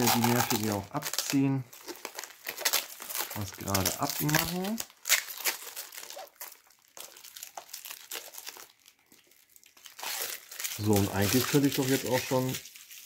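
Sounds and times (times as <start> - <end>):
plastic film crinkling: 0.0 - 13.0.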